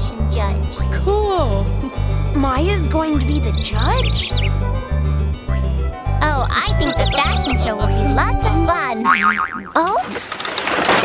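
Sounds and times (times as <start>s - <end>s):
cartoon music with pulsing bass: 0.0s - 9.8s
springy boing sound effects: 9.0s - 10.0s.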